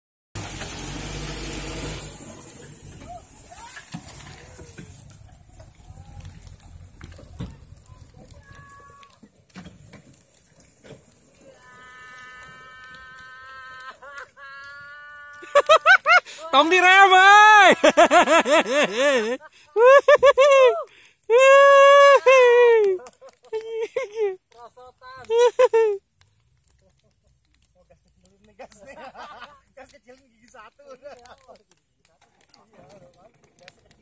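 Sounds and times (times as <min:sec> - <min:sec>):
distant voices: 0:01.9 - 0:15.5
person crying out: 0:11.6 - 0:15.7, 0:19.8 - 0:23.0, 0:25.3 - 0:26.0
person laughing loudly: 0:13.2 - 0:16.7, 0:17.4 - 0:24.4, 0:25.2 - 0:26.0.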